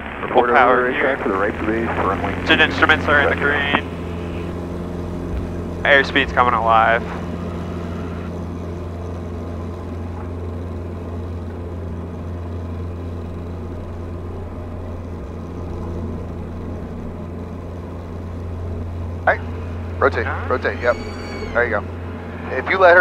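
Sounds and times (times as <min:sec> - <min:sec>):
aircraft engine drone in cabin: 0:00.0 - 0:23.0.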